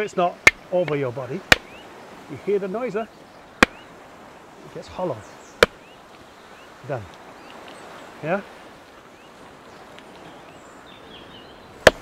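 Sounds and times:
wooden club striking coconut: 0.4 - 1.7, 3.6 - 3.8, 5.6 - 5.8, 11.8 - 12.0.

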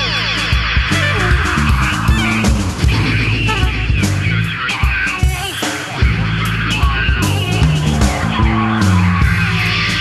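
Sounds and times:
bass guitar: 0.0 - 10.0
drums and cymbals: 0.0 - 10.0
electric guitar: 0.0 - 10.0.

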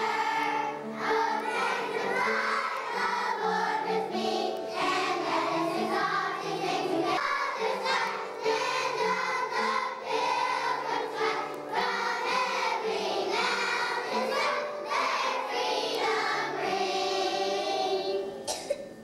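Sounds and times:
children's choir singing: 0.0 - 18.9.

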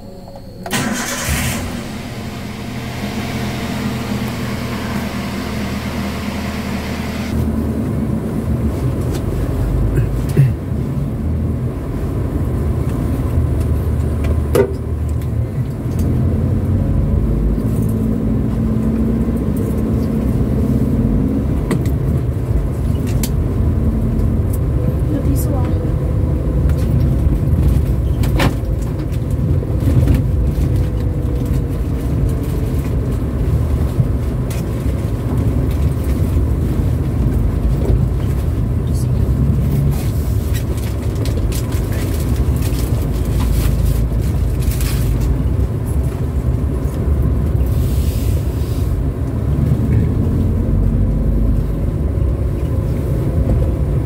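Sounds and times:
car engine and tyres droning: 0.0 - 54.0.

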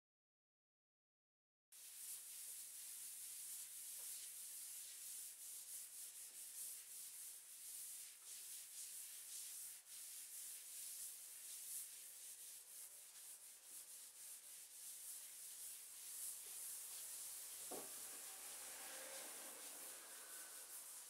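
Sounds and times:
sandpaper rasping on wood: 1.8 - 21.0.

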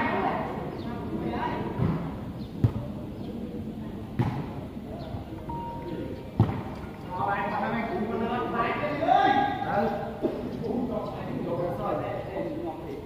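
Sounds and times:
crowd chatter: 0.0 - 13.0
ball kicked by bare feet: 4.2 - 4.5, 6.4 - 6.7.

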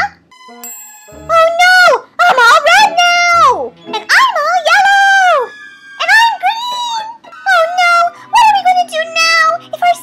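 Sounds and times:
high cartoonish voice wailing: 1.3 - 10.0.

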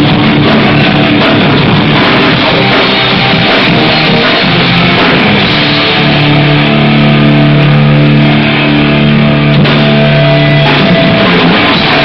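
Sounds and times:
hardcore band playing live: 0.0 - 12.0.

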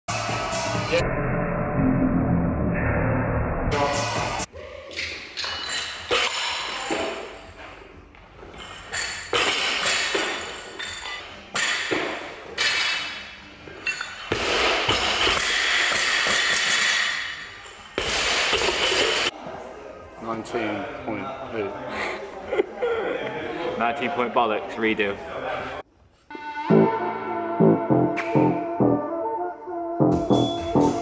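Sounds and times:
music: 0.1 - 1.0, 3.6 - 4.5, 26.3 - 31.0.

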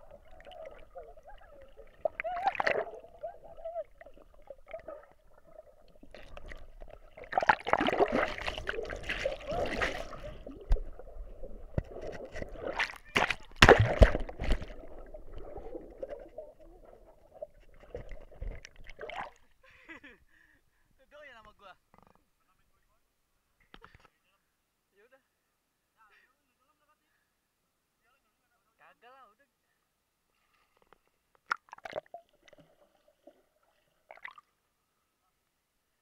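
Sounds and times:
muffled underwater gurgling: 0.0 - 18.6.

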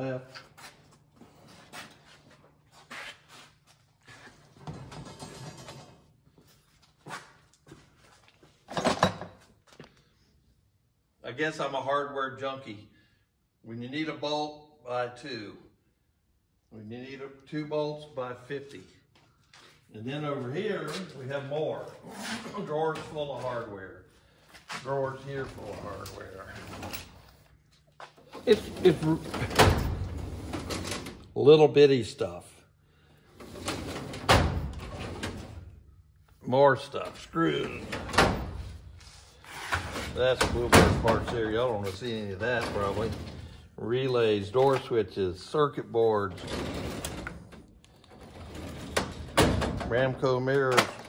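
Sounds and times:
footsteps and shuffling: 0.2 - 4.6, 6.3 - 8.7, 19.1 - 29.0
metal drawer banging shut: 28.7 - 31.0.

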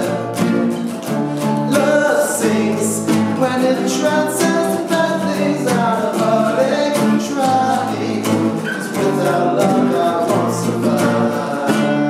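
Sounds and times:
acoustic guitars strumming: 0.0 - 12.0
two men singing: 0.0 - 12.0.

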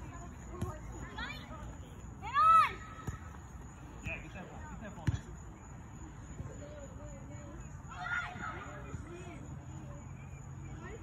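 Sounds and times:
distant voices: 0.0 - 11.0
boy shouting: 2.2 - 3.0, 7.9 - 9.0
ball being kicked: 2.9 - 3.4.

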